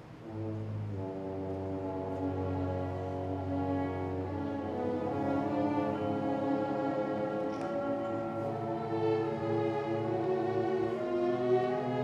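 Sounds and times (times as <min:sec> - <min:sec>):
orchestra playing sustained chord: 0:00.2 - 0:12.0.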